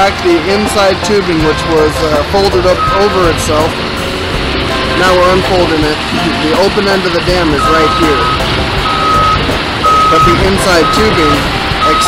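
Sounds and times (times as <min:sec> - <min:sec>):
low machinery rumble: 0:00.0 - 0:12.0
backup alarm beeping: 0:02.6 - 0:03.3, 0:07.5 - 0:12.0.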